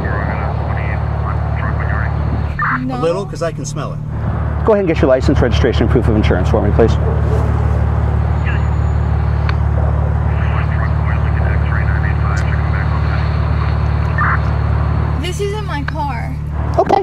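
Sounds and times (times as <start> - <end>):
car engine idling: 0.0 - 17.0.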